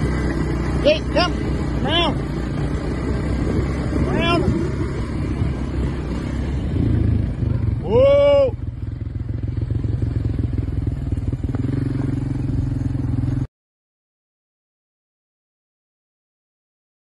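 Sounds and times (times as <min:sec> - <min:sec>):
small vehicle engine running: 0:00.0 - 0:13.5
person shouting: 0:07.7 - 0:08.7.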